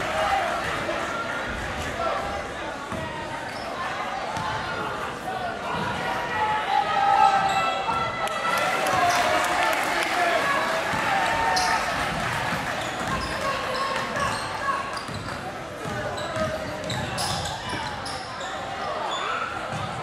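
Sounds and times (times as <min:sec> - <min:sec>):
sneaker squeaks: 0:03.5 - 0:03.8, 0:11.5 - 0:12.0, 0:12.8 - 0:20.0.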